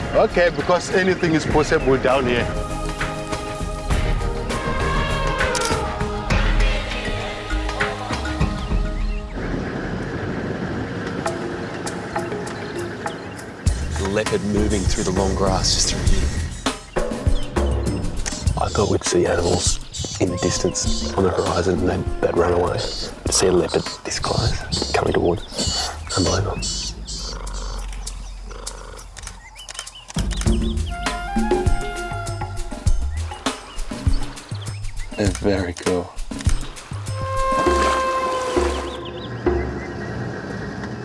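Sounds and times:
background music: 0.0s - 9.8s, 11.1s - 40.4s
leopard growling: 18.2s - 29.7s.

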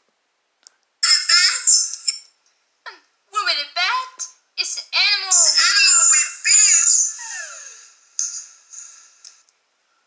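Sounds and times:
high voice singing through small speaker: 5.0s - 7.7s.

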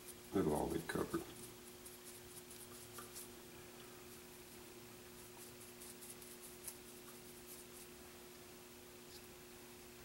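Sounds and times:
paintbrush scratching: 0.0s - 3.4s, 4.1s - 8.0s
low steady hum: 0.0s - 10.0s.

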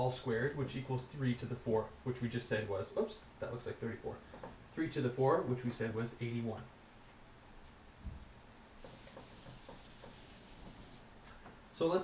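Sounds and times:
whiteboard being wiped: 8.8s - 11.1s.

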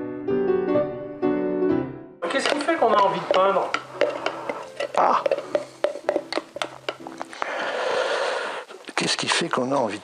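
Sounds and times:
stick scraping paint pot: 2.2s - 7.6s
stick tapping pot sides: 2.2s - 7.6s.

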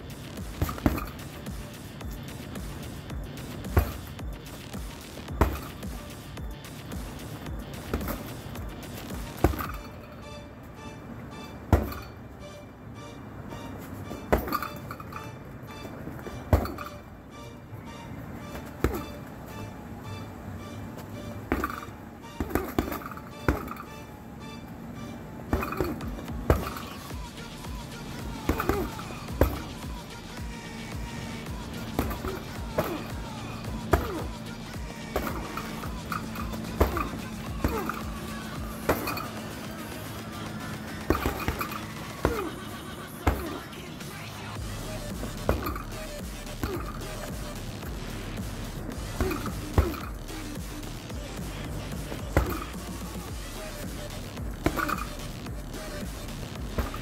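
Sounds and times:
punches thudding on heavy bag: 0.0s - 10.0s, 11.7s - 12.2s, 14.3s - 15.2s, 16.2s - 17.0s, 18.5s - 19.3s, 21.4s - 23.9s, 25.5s - 40.3s, 41.0s - 42.6s, 43.2s - 43.7s, 44.6s - 57.0s
background music: 0.0s - 57.0s.

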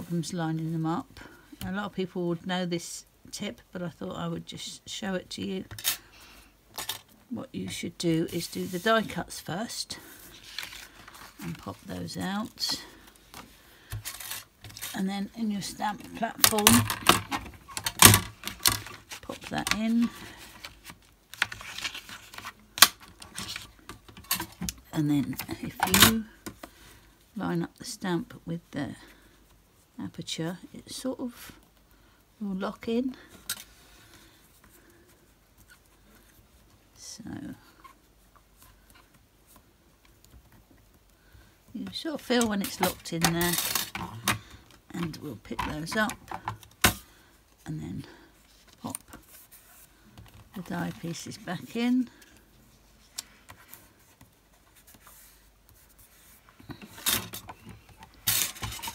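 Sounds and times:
card stock rustling: 15.6s - 26.2s, 48.6s - 58.9s.

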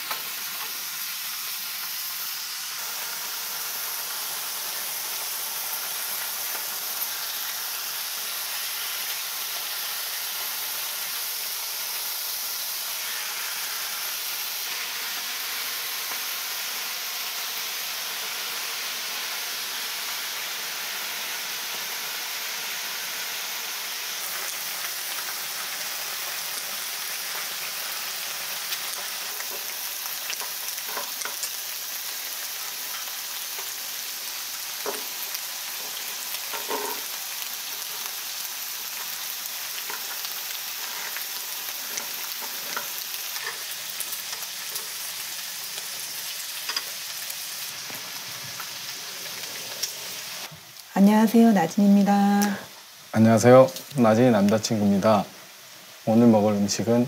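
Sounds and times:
meat sizzling on griddle: 0.0s - 57.0s.

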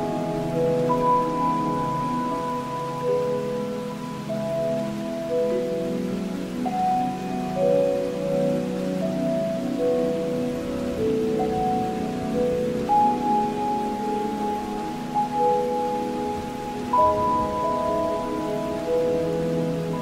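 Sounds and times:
slow relaxation music: 0.0s - 20.0s
steady hiss: 0.0s - 20.0s.

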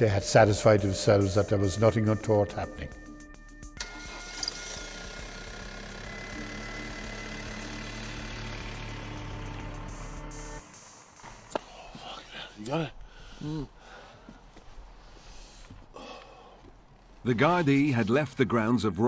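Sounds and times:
steady drone of held tones: 4.8s - 11.5s
person breathing: 11.6s - 16.8s.

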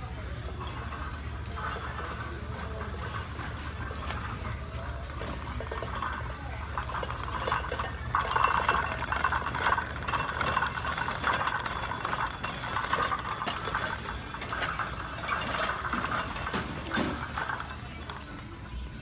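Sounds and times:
shopping cart rattling: 0.0s - 19.0s.

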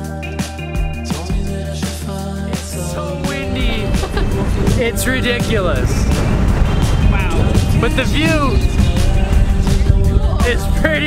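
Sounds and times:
background music: 0.0s - 11.0s
wind buffeting microphone: 2.9s - 11.0s.

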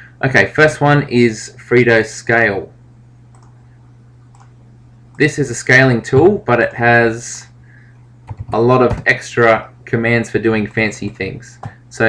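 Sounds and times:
steady low hum: 0.0s - 12.0s
computer mouse clicks: 3.3s - 3.6s, 4.3s - 4.6s.

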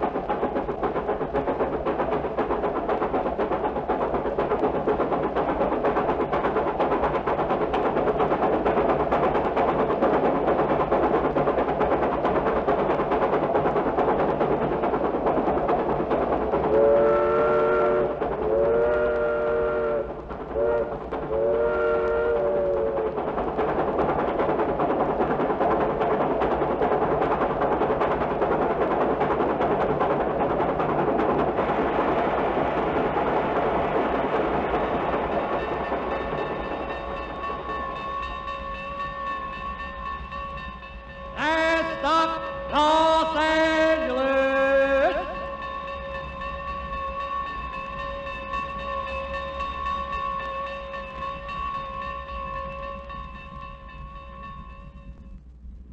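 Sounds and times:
train running: 0.0s - 55.9s
train whistle blasts: 16.8s - 23.1s.

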